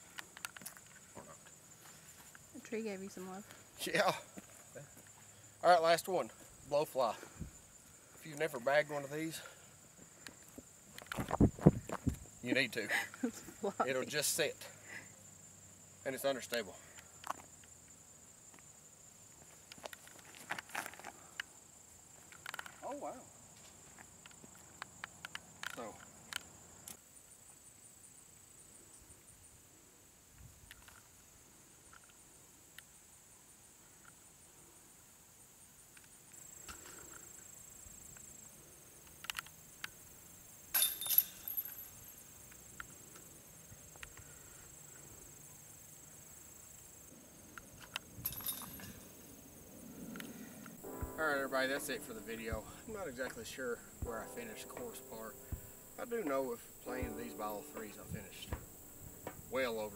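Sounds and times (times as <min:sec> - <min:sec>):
high insect buzz: 0:00.0 - 0:59.9
disc rattling metal basket chains: 0:40.8 - 0:42.2, 0:48.2 - 0:49.0.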